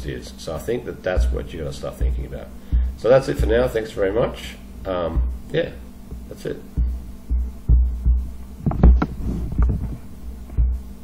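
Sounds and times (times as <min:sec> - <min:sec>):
low thumps: 0:00.0 - 0:11.0.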